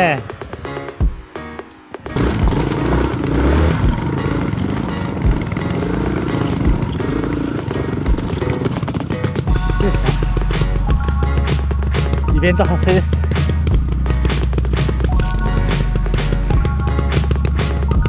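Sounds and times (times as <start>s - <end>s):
trail bike engine at low speed: 2.1s - 18.0s
bike knocking on stones: 3.5s - 18.0s.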